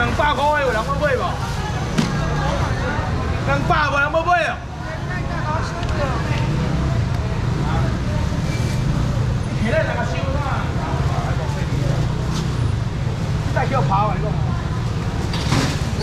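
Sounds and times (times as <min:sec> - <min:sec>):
people talking nearby: 0:00.0 - 0:16.0.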